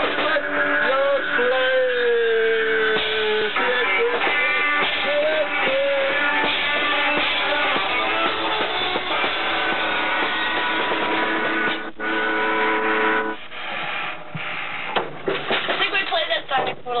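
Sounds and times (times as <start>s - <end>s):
voices: 0.0s - 8.3s
rock band with electric guitar: 0.0s - 16.6s
knocks: 14.3s - 16.8s.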